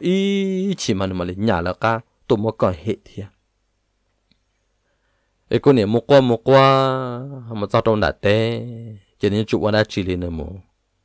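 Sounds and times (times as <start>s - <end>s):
faint click: 4.0s - 4.7s.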